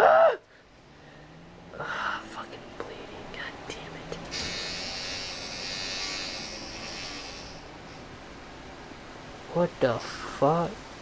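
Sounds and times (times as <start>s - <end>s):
high-pitched buzz: 4.2s - 8.0s.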